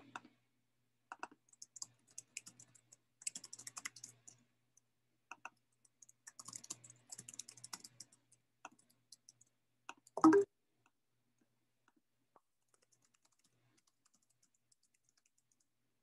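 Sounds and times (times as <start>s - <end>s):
faint keyboard typing: 1.1s - 10.5s, 12.4s - 15.8s.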